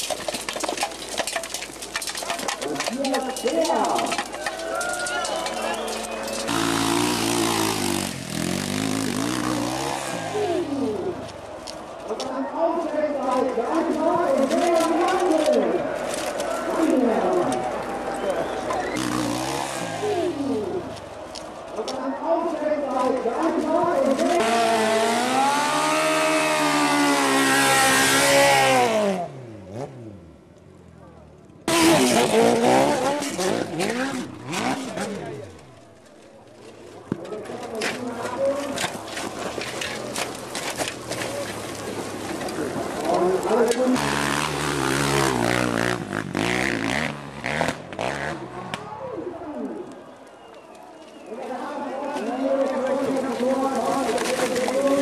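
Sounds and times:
dirt bike engines revving: 0:01.5 - 0:55.0.

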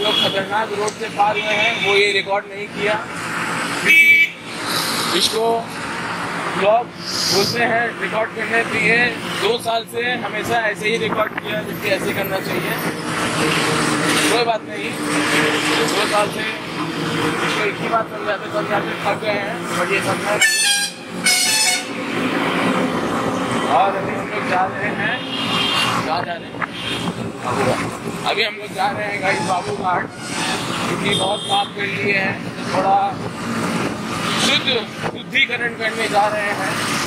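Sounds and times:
vehicle horn beep: 0:00.0 - 0:00.4, 0:03.9 - 0:04.4, 0:20.4 - 0:22.0
wind and road noise: 0:00.0 - 0:37.0.

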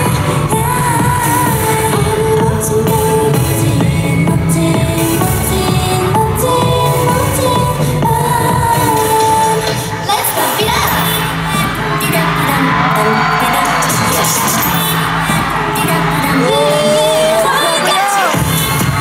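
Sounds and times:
dance track over sound system: 0:00.0 - 0:19.0
group singing: 0:00.0 - 0:19.0
crowd cheering: 0:11.6 - 0:19.0.

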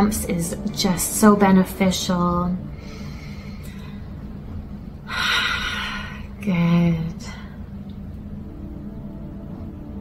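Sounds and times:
faint hum: 0:00.0 - 0:10.0
low background rumble: 0:00.0 - 0:10.0.

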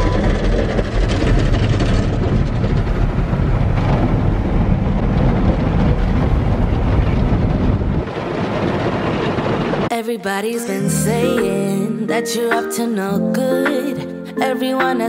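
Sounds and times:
deep rumble: 0:00.0 - 0:09.9.

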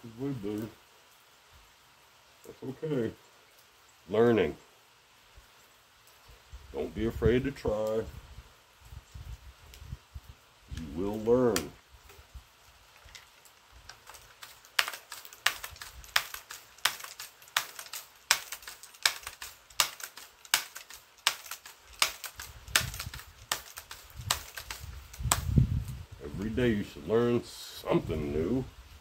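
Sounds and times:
air rifle mechanical clicks: 0:12.9 - 0:25.5.

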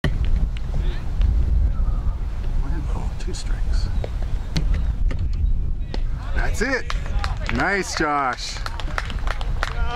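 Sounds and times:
wind rumbling on microphone: 0:00.0 - 0:09.9.

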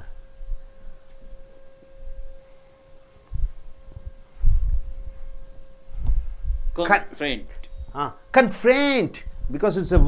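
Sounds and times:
steady mid-pitched hum: 0:00.0 - 0:10.0.

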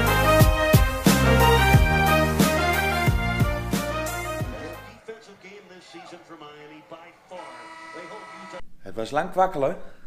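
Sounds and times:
commentator talking on tv: 0:04.5 - 0:09.7.

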